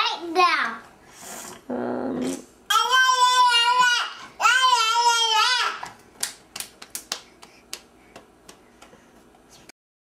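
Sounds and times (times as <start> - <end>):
toddler's wavering voice: 2.7 - 5.8
small hand claps: 5.8 - 9.0.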